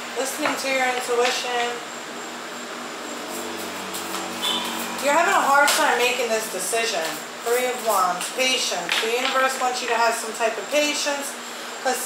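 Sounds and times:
steady low hum: 0.0s - 11.9s.

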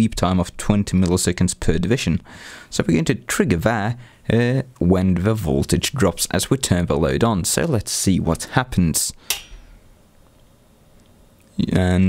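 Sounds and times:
sharp switch click: 9.3s - 9.7s.

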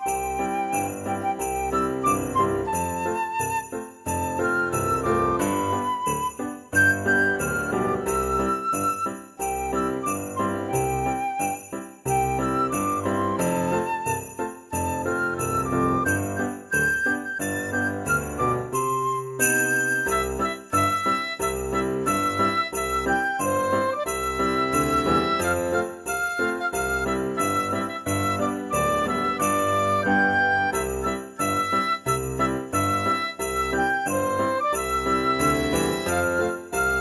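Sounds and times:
bell-like melody: 0.0s - 37.0s
sleigh bells jingling: 0.0s - 37.0s.

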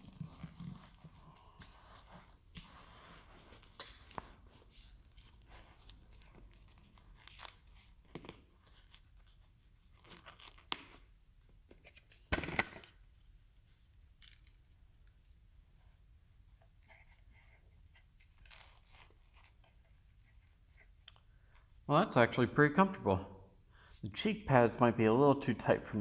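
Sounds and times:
helmet rustling and scraping: 0.0s - 12.3s, 12.9s - 22.5s.

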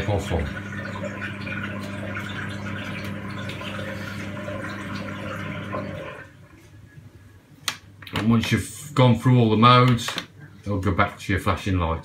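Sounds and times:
water running in washing machine: 0.0s - 6.5s
washing machine electrical hum: 0.0s - 12.0s.

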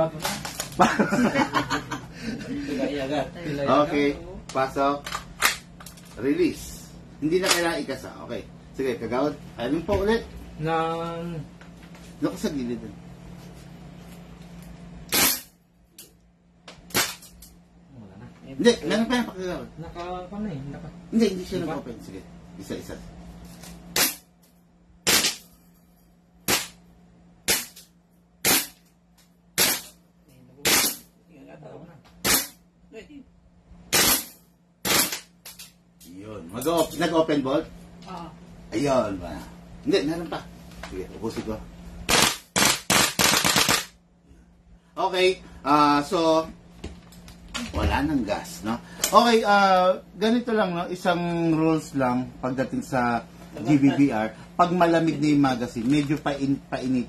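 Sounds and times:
airsoft rifle full auto bursts: 42.1s - 43.9s.

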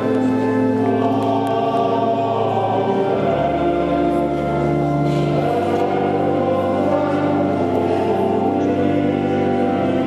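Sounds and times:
choir singing held chords: 0.0s - 10.0s.

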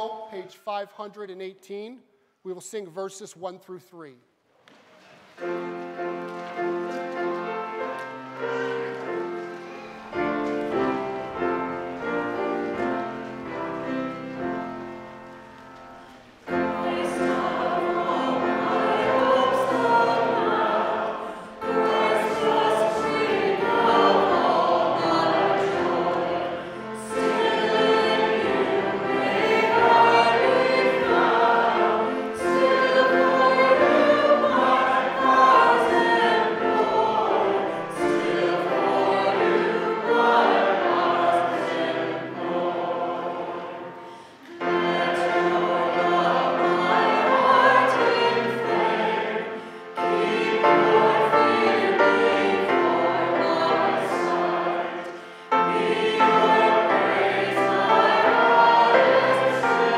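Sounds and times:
congregation singing a hymn: 5.3s - 59.9s.

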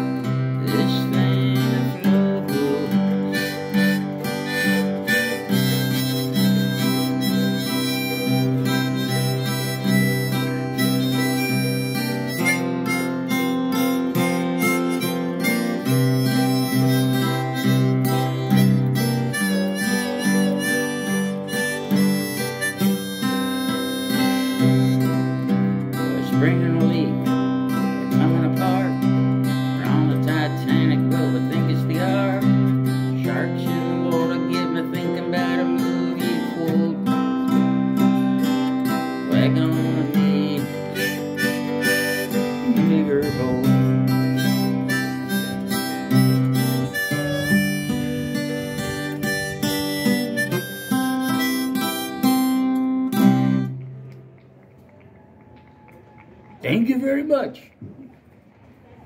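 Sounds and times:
acoustic guitar strumming chords: 0.0s - 54.1s
instrumental lead melody: 0.0s - 55.0s.

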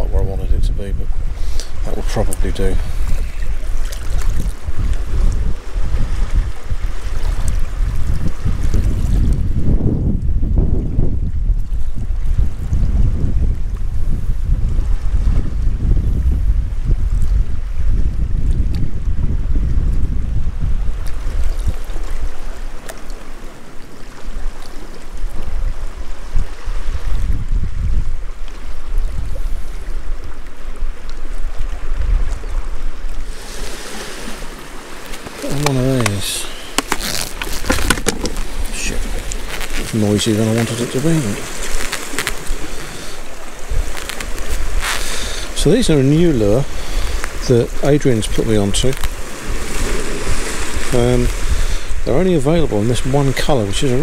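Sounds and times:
sea waves washing against rocks: 0.0s - 11.1s, 18.9s - 54.0s
wind buffeting microphone: 0.0s - 54.0s.

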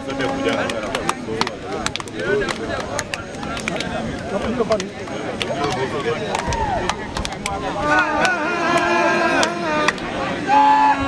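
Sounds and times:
people's voices: 0.0s - 11.0s
hands slapping: 0.5s - 7.6s.

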